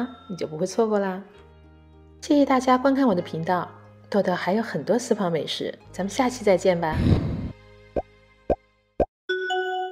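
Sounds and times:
faint background music: 0:00.0 - 0:08.3.

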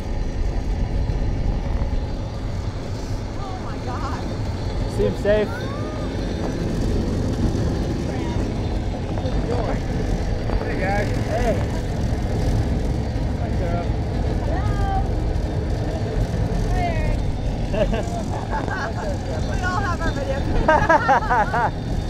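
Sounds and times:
wind buffeting microphone: 0:00.0 - 0:22.0
voices: 0:03.3 - 0:07.0, 0:07.9 - 0:12.2, 0:13.3 - 0:21.9
people laughing: 0:17.6 - 0:21.9.

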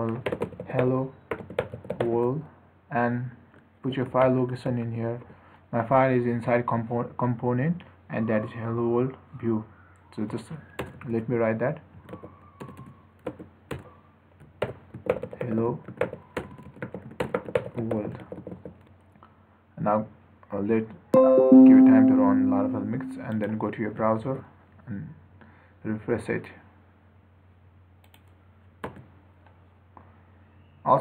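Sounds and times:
typing on computer keyboard: 0:00.1 - 0:02.2, 0:12.0 - 0:19.0.

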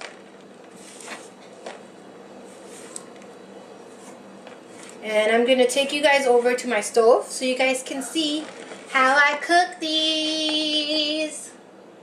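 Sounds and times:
faint steady hum: 0:00.0 - 0:12.0
hands rustling chopped spinach: 0:08.2 - 0:09.2.

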